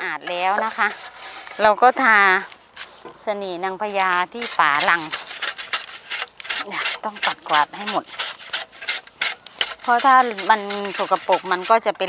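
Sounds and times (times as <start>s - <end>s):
plastic brush scrubbing wood: 0.0s - 3.2s, 3.8s - 12.0s.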